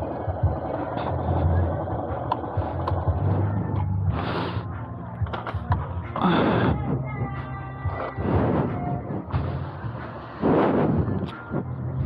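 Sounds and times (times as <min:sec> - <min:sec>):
motorcycle engine idling: 0:00.0 - 0:08.1.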